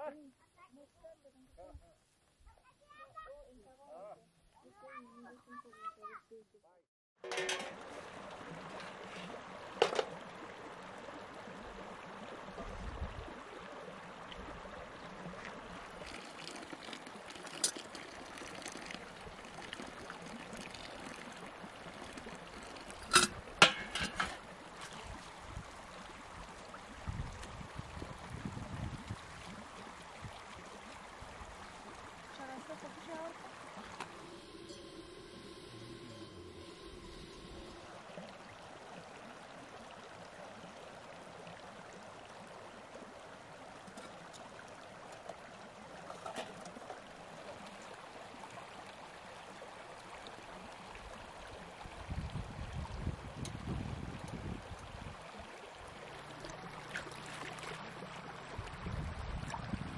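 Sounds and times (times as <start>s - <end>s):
metal dishes clinking: 7.2s - 7.8s, 23.0s - 24.4s
stream running over stones: 7.2s - 59.9s.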